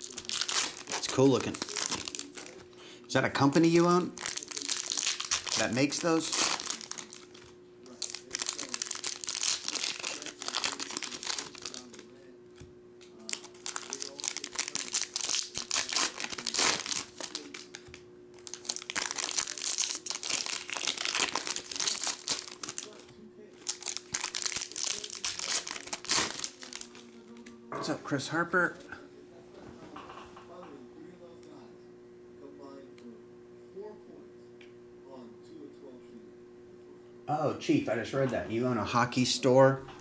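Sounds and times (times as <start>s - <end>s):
foil wrappers crinkling and tearing: 0.0s - 12.2s, 13.2s - 27.6s.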